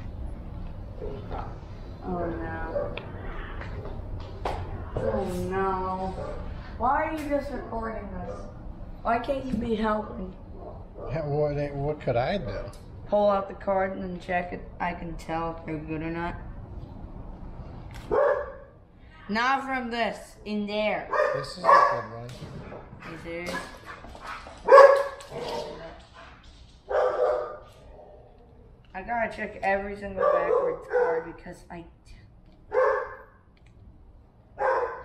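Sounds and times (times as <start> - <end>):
dog barking: 2.7 - 3.1, 6.1 - 6.5, 18.1 - 18.7, 21.1 - 22.2, 23.0 - 25.8, 26.9 - 28.2, 30.2 - 31.4, 32.7 - 33.3, 34.6 - 35.0.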